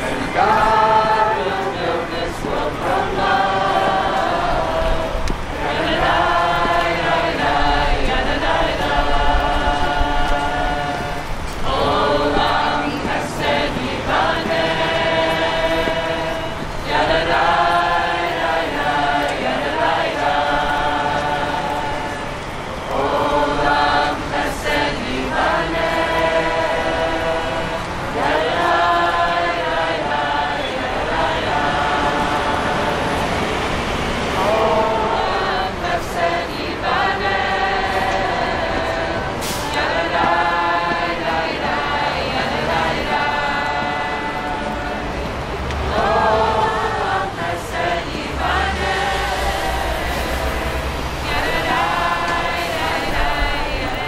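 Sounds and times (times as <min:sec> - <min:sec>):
group singing unaccompanied: 0:00.0 - 0:54.0
brief hiss: 0:39.4 - 0:39.9.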